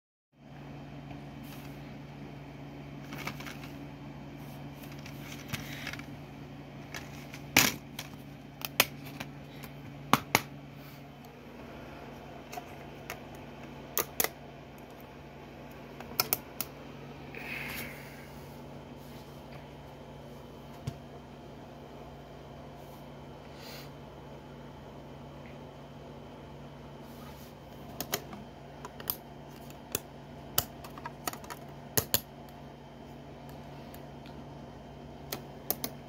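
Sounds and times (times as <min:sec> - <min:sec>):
low hum: 0:00.4 - 0:36.0.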